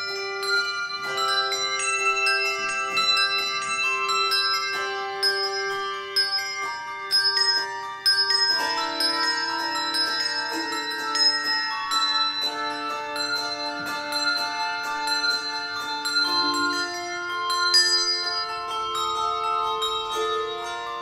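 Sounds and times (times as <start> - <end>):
handbells ringing chords: 0.0 - 21.0.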